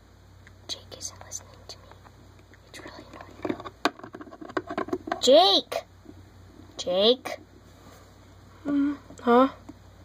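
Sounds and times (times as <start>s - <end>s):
soft whispering: 0.7s - 3.5s.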